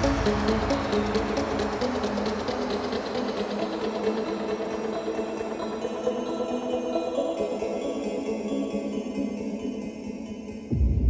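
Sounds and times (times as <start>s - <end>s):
sustained synth chords: 0.0s - 9.6s.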